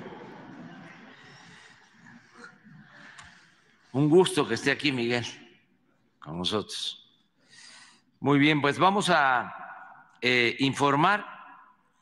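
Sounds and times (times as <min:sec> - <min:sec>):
murmur of voices: 0:00.0 - 0:04.0.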